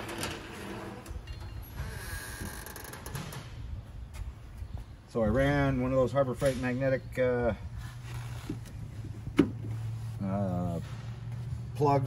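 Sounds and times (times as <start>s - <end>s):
metal drawers sliding: 0.0s - 1.7s
metal locker door swinging open: 2.6s - 3.6s.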